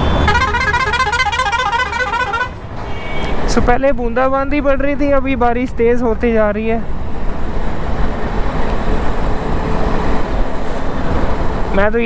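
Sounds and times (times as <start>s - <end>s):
wind and road rush: 0.0s - 12.0s.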